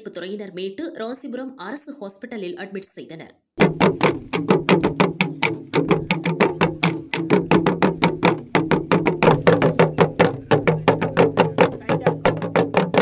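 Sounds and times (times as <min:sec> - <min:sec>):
fast steady drumming: 0:03.6 - 0:13.0.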